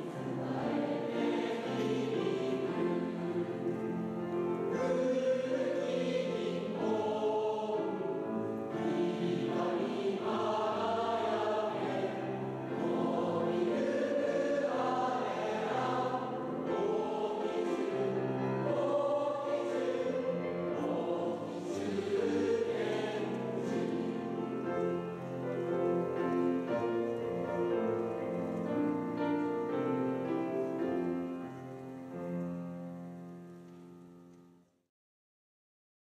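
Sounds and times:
choir singing slow song: 0.0 - 34.4.

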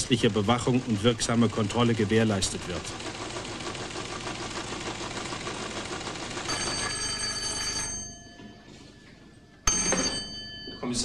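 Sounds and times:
teleprinter clattering: 0.0 - 8.4
telephone bell ringing: 6.4 - 11.0.

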